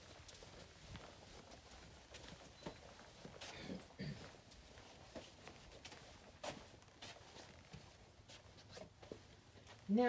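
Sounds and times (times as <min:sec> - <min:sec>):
footsteps in sandals: 0:00.0 - 0:10.0.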